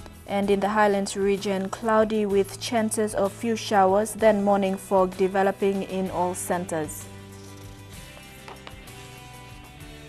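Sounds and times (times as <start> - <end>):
sustained tones background music: 0.0 - 10.0.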